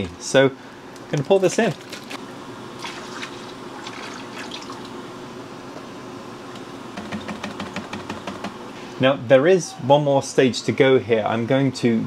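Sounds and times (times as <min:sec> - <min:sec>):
liquid pouring and trickling: 0:02.8 - 0:04.9.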